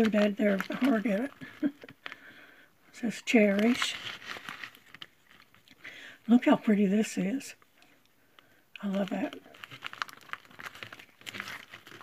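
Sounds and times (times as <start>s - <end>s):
plastic sleeves rustling: 0.0s - 12.0s.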